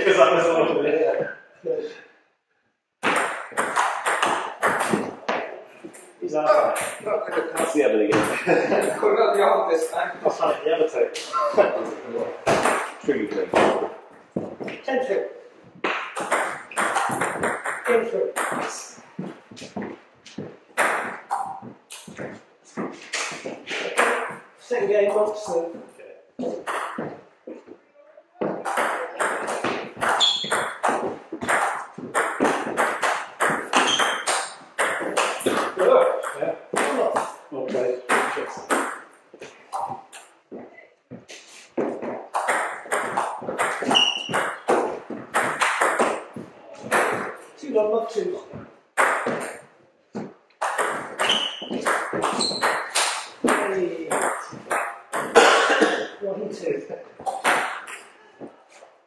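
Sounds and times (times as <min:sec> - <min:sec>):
ball bouncing on table: 0:03.0 - 0:06.0, 0:15.8 - 0:24.4, 0:26.4 - 0:27.8, 0:28.4 - 0:39.0, 0:41.8 - 0:47.4, 0:48.5 - 0:55.4.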